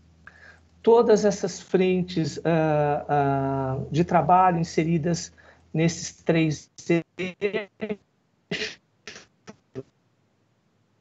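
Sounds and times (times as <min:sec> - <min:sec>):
man speaking over call: 0:03.9 - 0:08.7.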